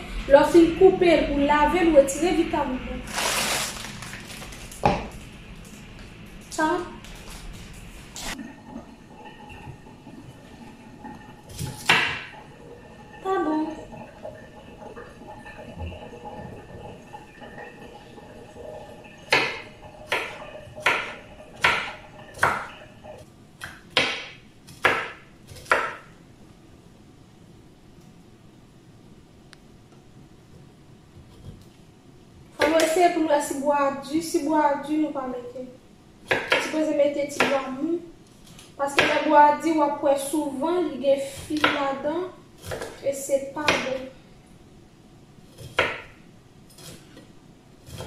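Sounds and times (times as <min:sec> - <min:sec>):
woman speaking loudly: 0:00.3 - 0:03.1, 0:06.6 - 0:07.0, 0:32.6 - 0:35.7, 0:38.8 - 0:42.3
knife cutting vegetable: 0:42.6 - 0:44.0, 0:46.7 - 0:48.0.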